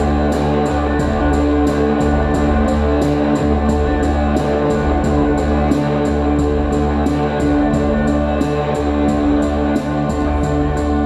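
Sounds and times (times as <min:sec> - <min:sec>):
electric guitar sustained notes: 0:00.0 - 0:11.0
steady electronic beat: 0:00.0 - 0:11.0.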